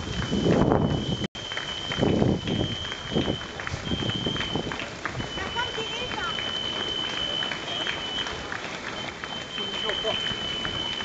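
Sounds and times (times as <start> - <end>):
footsteps slapping on asphalt: 0.0 - 11.0
spectators' voices: 1.4 - 11.0.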